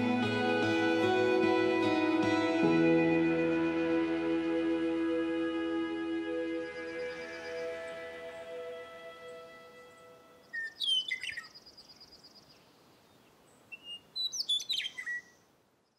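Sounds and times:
soft background music: 0.0s - 10.8s
bird chirping: 6.1s - 15.9s
faint high bird trill: 6.6s - 12.5s.

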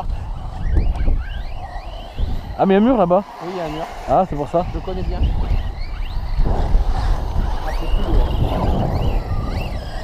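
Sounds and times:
distant electric motors whining: 0.0s - 10.0s
wind buffeting microphone: 0.0s - 10.0s.

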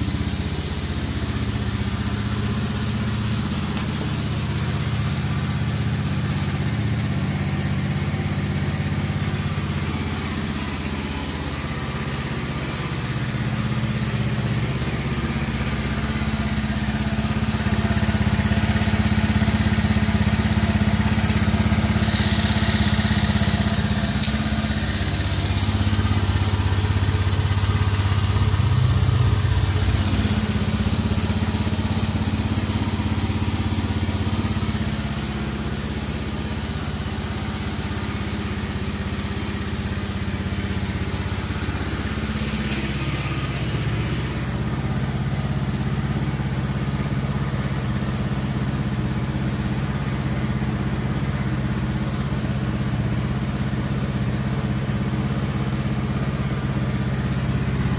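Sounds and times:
scooter engine idling: 0.0s - 57.9s.

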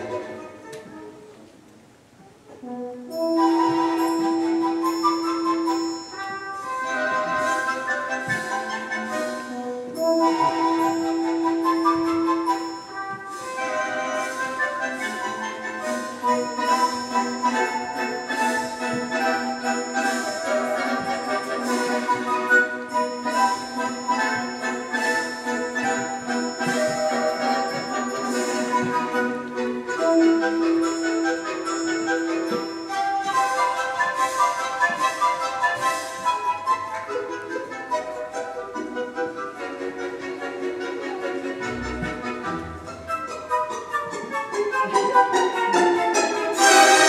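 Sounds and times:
classical orchestral music: 0.0s - 47.0s.

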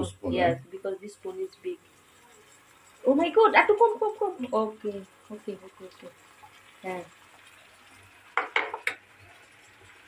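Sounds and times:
spoon knocking on wok rim: 8.4s - 9.0s.

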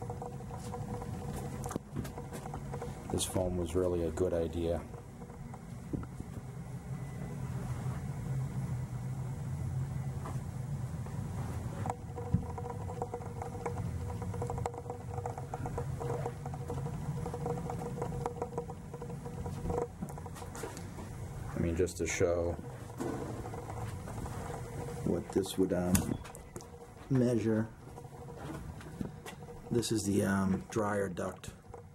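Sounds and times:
boiler low hum: 0.0s - 31.9s
boiler click: 24.5s - 26.7s.

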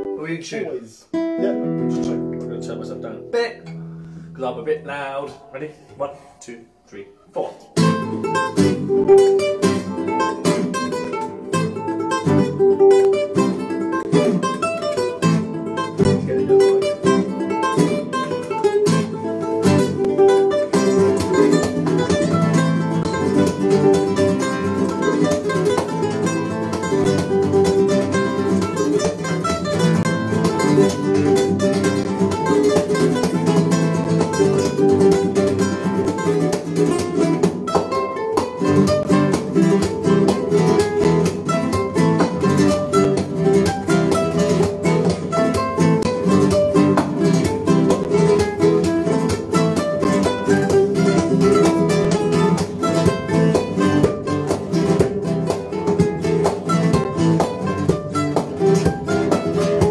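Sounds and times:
classical guitar duet: 0.0s - 59.9s.

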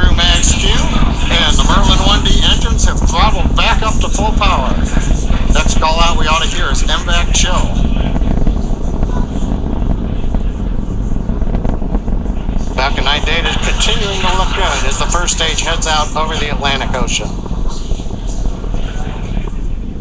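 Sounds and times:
people's voices: 0.0s - 20.0s
rocket engines rumbling: 0.0s - 20.0s.

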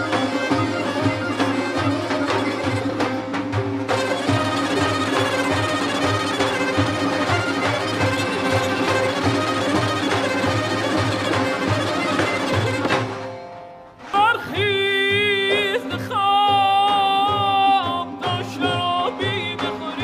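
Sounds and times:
hand drums beating: 0.0s - 13.6s, 14.2s - 20.0s
bowed fiddle melody: 0.0s - 20.0s.

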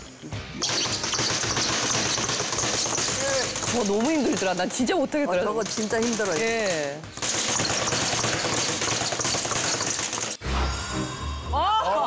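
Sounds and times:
speed bag rattling under punches: 0.8s - 10.4s.

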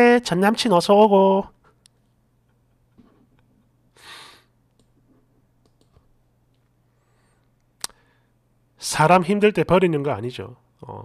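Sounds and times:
person exhaling: 4.0s - 4.5s.

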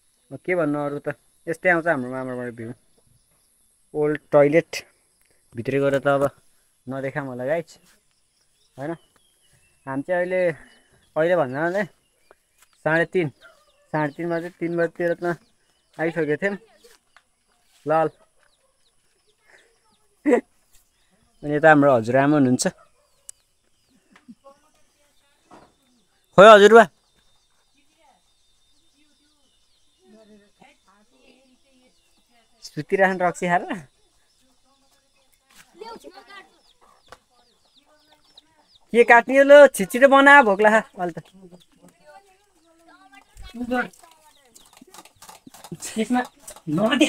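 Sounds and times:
small birds chirping: 0.0s - 47.0s.

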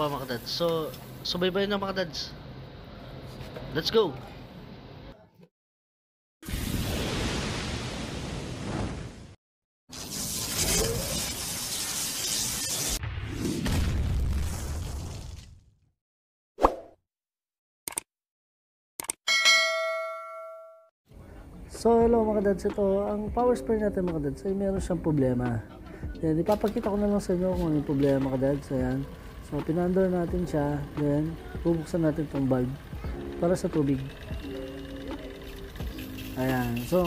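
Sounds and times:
metallic bell-like ding: 19.3s - 20.9s
power sprayer motor and pump hum: 26.5s - 37.0s.

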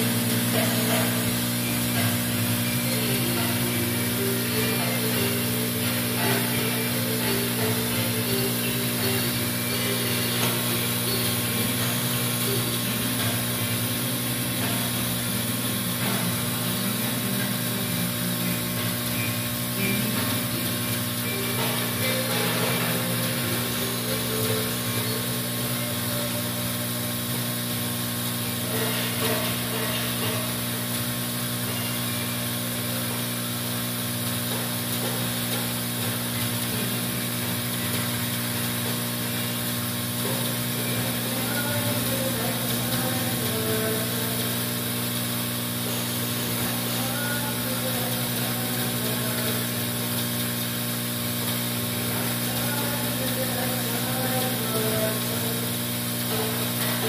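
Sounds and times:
vibratory feeder humming: 0.0s - 57.0s.

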